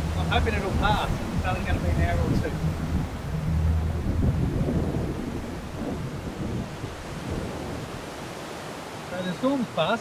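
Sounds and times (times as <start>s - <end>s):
low rumble of thunder: 0.0s - 8.0s.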